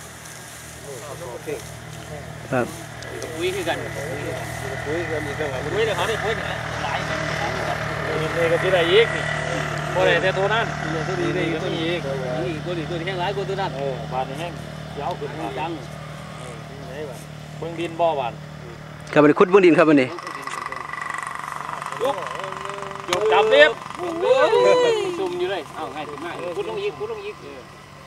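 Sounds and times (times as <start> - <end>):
low mechanical hum: 0.0 - 28.0
people talking in background: 0.8 - 28.0.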